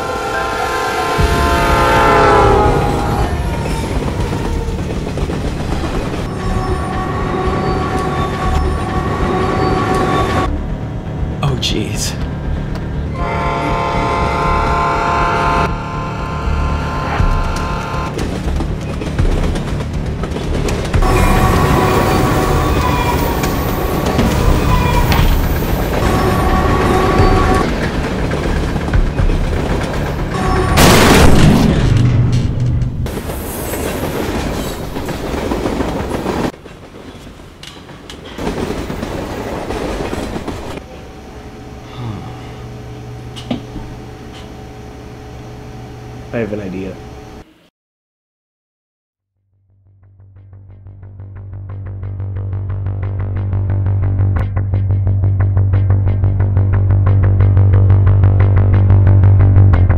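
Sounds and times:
locomotive horn: 0.0s - 4.8s, 6.2s - 10.5s, 13.1s - 18.2s, 21.0s - 27.8s, 30.3s - 31.2s
rush of passing train: 0.0s - 31.0s, 32.3s - 47.6s
freight train rumbling: 0.0s - 47.5s.

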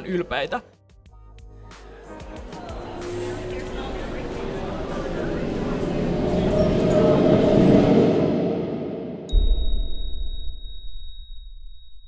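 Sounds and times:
dense wash of sound: 2.6s - 9.6s
bright ding: 9.3s - 12.0s.

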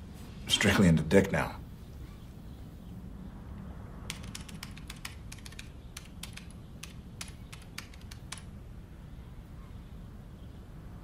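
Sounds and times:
low room hum: 0.0s - 11.0s
rapid typing on keyboard: 4.1s - 8.5s.

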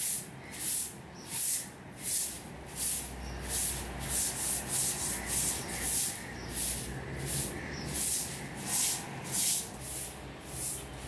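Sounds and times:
broom sweeping stone tiles: 0.0s - 11.0s.

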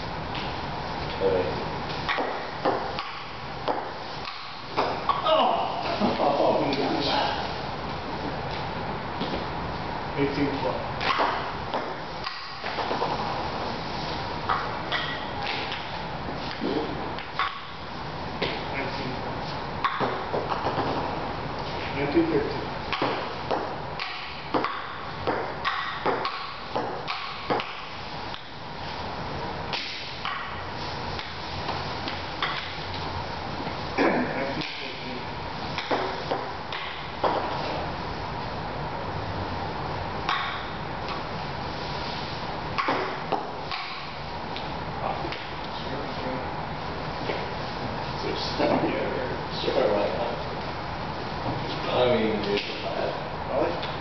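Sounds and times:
table tennis ball hits: 2.1s - 5.2s, 11.0s - 13.1s, 14.5s - 17.8s, 19.8s - 21.1s, 22.9s - 28.5s, 29.7s - 30.6s, 31.2s - 32.8s, 35.7s - 37.6s, 40.2s - 41.2s, 42.8s - 44.2s.

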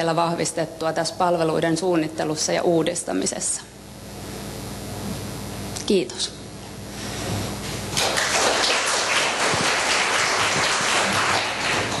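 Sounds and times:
audience applauding: 7.9s - 12.0s.

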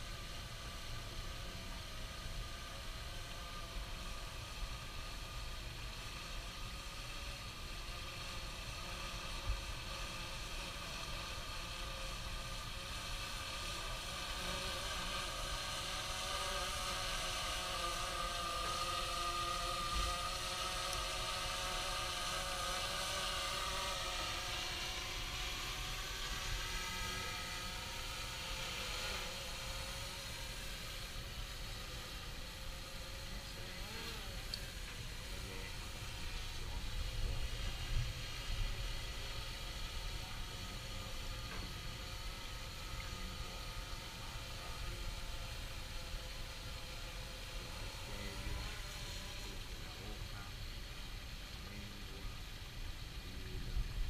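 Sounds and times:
drone hovering whine: 0.0s - 54.0s.

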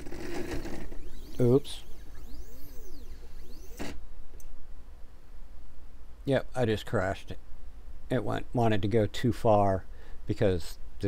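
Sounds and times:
stepper motors whining: 0.0s - 4.0s.

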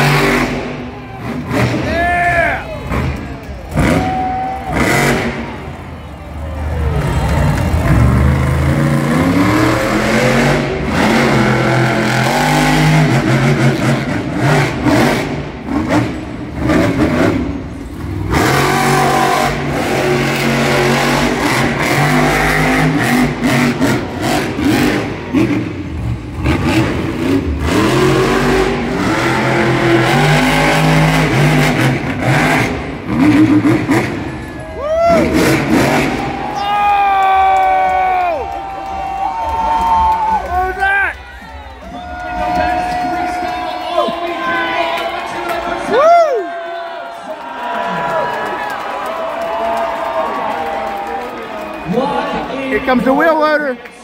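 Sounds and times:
truck engine revving: 0.0s - 36.6s
spectator whooping: 1.0s - 2.9s, 3.8s - 5.1s, 34.4s - 52.2s.

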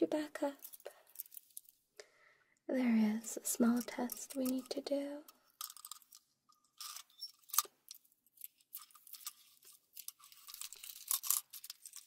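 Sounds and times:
crackling and scratching: 0.0s - 1.8s, 3.2s - 12.0s.

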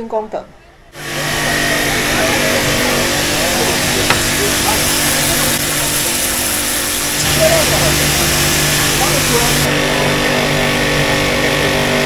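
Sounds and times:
water spray hissing: 1.0s - 9.7s
pump motor hum: 1.0s - 12.0s.

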